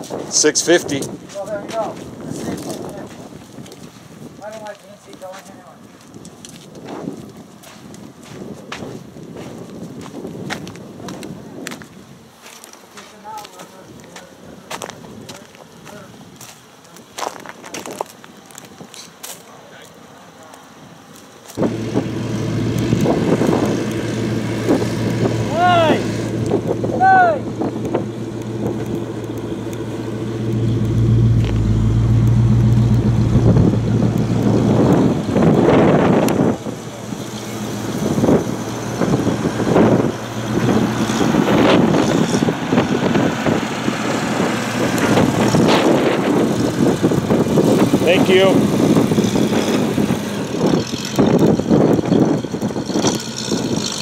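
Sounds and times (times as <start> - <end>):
bus engine humming: 21.6 - 54.0.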